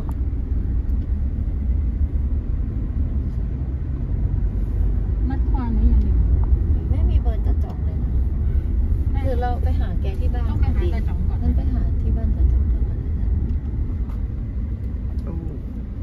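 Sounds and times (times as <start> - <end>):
car engine and tyres rumbling: 0.0 - 16.0.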